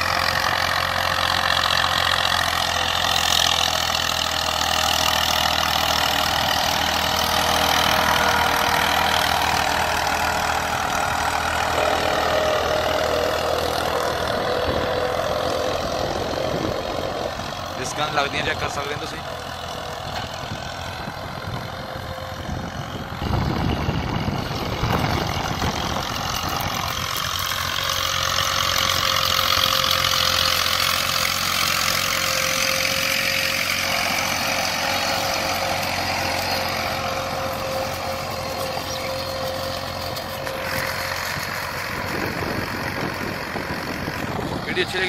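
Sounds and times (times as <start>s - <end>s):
tractor diesel engine running: 0.0s - 45.0s
steady whine: 4.1s - 29.8s.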